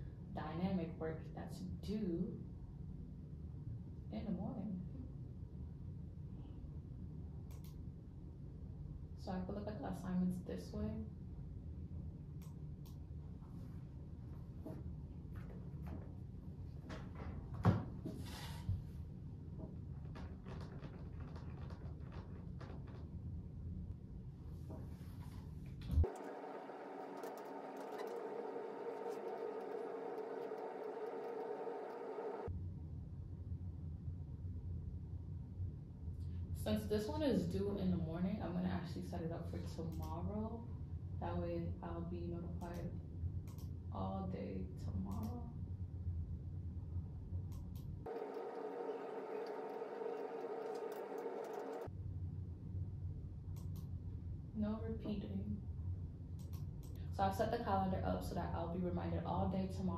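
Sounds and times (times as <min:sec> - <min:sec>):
room hum with held tones: 0:00.0 - 0:59.9
computer keyboard typing: 0:20.1 - 0:23.1, 0:26.0 - 0:32.5, 0:48.1 - 0:51.9.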